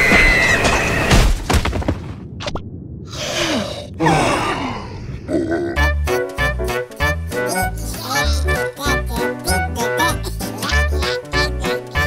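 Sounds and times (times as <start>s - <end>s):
cartoon grunts and groans: 3.1s - 6.0s, 7.3s - 12.0s.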